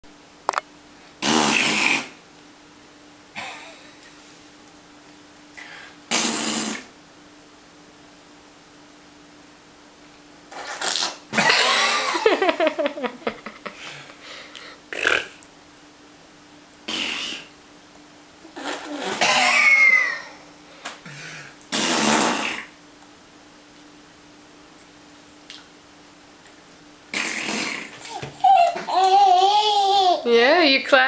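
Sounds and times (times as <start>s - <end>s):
baby laughing and squealing: 18.6s - 20.4s, 28.0s - 30.3s.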